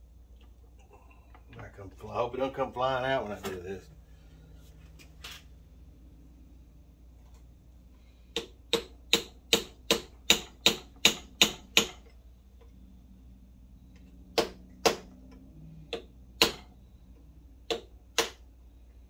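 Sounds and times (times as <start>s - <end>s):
hammer tapping on metal: 8.3s - 12.1s, 15.9s - 16.7s, 17.7s - 18.4s.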